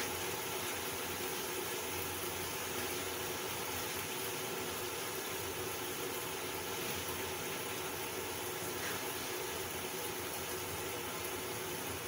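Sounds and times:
gas flame hissing: 0.0s - 12.0s.

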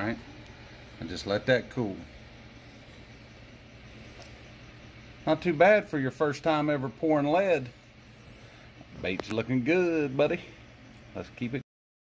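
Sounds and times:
faint low hum with hiss: 0.0s - 11.6s.

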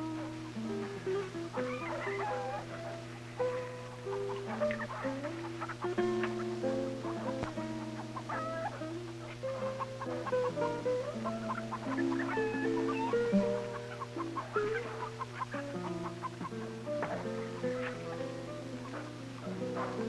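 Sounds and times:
plucked guitar melody: 0.0s - 20.0s.

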